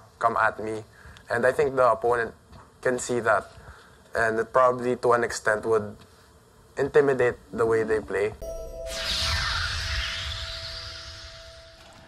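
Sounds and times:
steady held tone: 8.4 - 12.0
whooshing sweep: 8.4 - 12.0.

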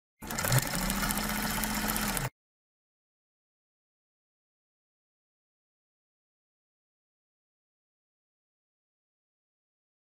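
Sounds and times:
small machine humming and clattering: 0.2 - 2.3.

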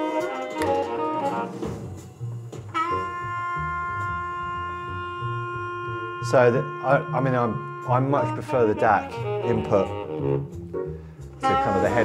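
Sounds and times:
bass line: 0.0 - 12.0
saxophone: 0.0 - 12.0.

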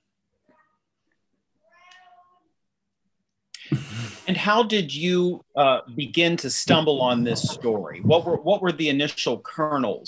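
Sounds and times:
faint high-pitched cry: 0.4 - 0.9, 1.6 - 2.6.

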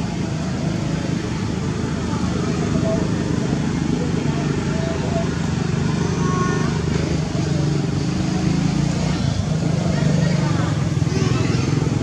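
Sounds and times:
engine rumbling: 0.0 - 12.0
faint indistinct voices: 0.0 - 12.0.

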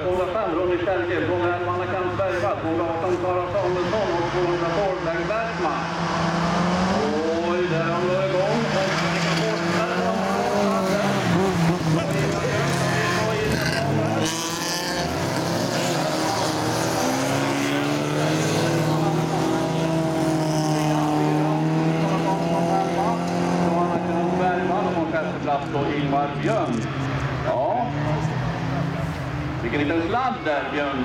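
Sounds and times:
race car engines racing past: 0.0 - 31.0.

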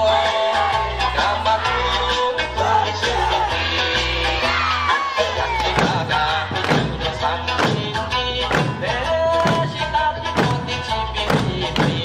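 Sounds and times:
barrel drums and hand drums: 5.5 - 12.0.

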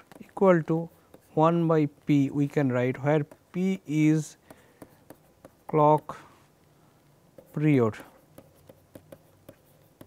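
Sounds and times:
stylus tapping on pen tablet: 4.5 - 6.2, 7.4 - 10.0.

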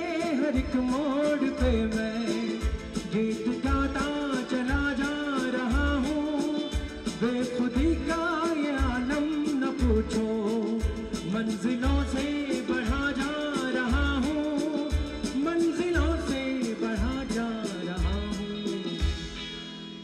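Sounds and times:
man singing: 0.0 - 19.4
bass drum beat: 0.0 - 19.6
live band playing: 0.0 - 20.0.

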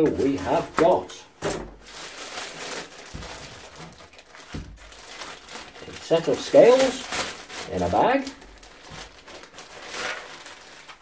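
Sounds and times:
plastic bag crinkling: 0.1 - 11.0.

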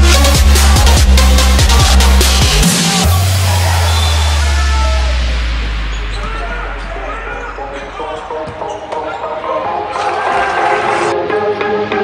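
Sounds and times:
electronic bass music: 0.0 - 8.4
players and spectators voices: 0.6 - 11.1.

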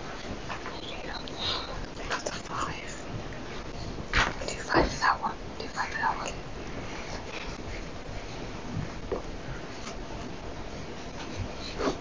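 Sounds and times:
murmured talk and whispering: 0.6 - 6.4.

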